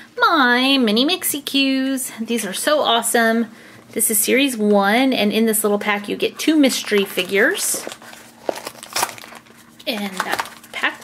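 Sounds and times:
sharp crackles of foil: 6.7 - 11.0
foil packet crinkling and tearing: 6.8 - 11.0.

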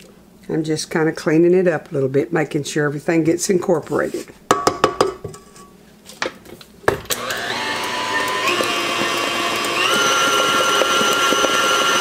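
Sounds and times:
stand mixer motor whine: 7.0 - 12.0
beater working thick batter: 7.1 - 12.0.

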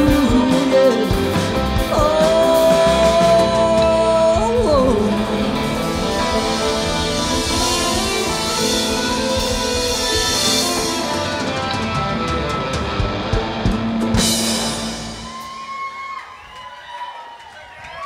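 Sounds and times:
rock band playing: 0.0 - 16.5
crowd voices: 0.0 - 18.0.

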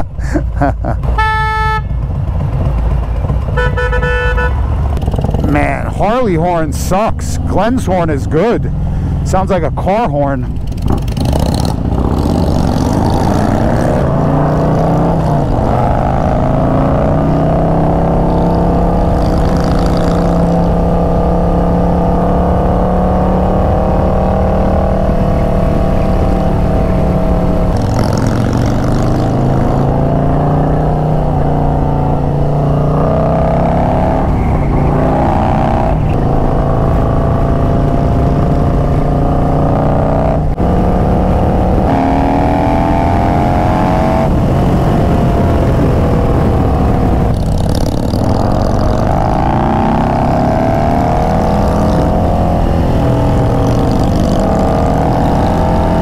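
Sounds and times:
motorcycle engine accelerating: 0.0 - 56.0.

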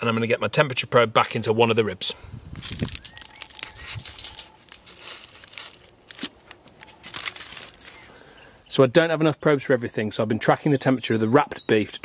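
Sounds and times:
aluminium foil crinkling: 2.5 - 8.2.

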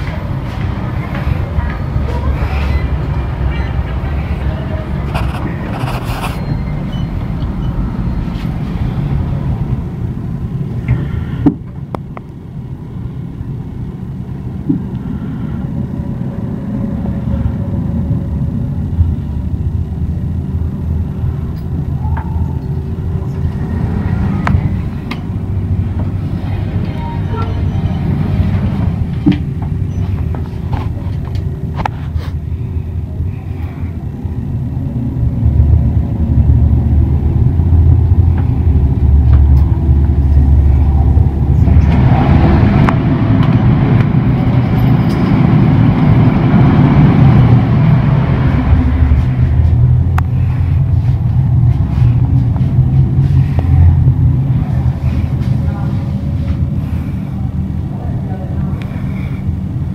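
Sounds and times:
elevator cab rumbling: 0.0 - 59.9
rushing noise: 0.0 - 59.9.

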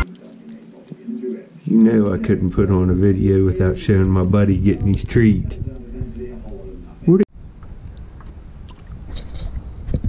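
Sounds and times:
wind buffeting microphone: 2.3 - 10.0
water lapping against a hull: 7.6 - 10.0.

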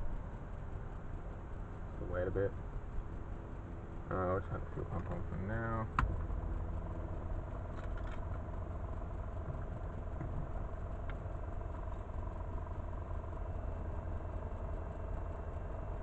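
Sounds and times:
electrical hum and whine: 0.0 - 16.0
small tick: 11.0 - 11.2.

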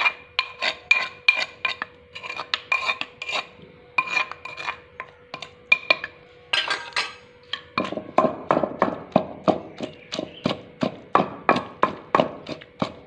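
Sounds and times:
spoon scraping clay mortar: 0.0 - 13.0
wooden pestle pounding: 7.5 - 13.0.

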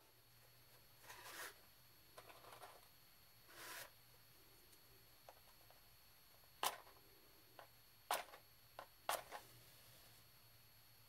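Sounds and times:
matchbox drawer sliding open: 3.5 - 3.9.

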